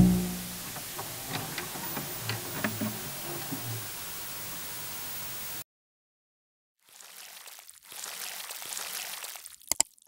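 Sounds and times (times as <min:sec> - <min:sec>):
static hiss: 0:00.0 - 0:05.6.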